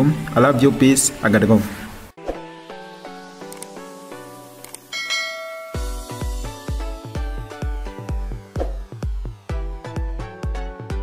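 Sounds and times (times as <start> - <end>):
electronic dance music: 2.9 - 10.6
bright bell ding: 4.9 - 6.4.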